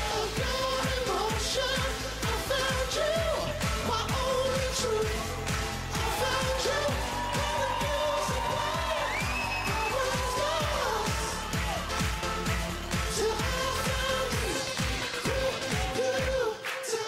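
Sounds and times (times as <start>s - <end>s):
dance beat kick drum: 0.0s - 17.0s
men singing pop song: 0.0s - 17.0s.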